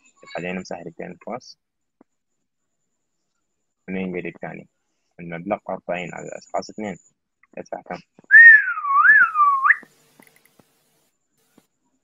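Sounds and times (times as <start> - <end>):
person whistling wavering note: 8.3 - 9.8.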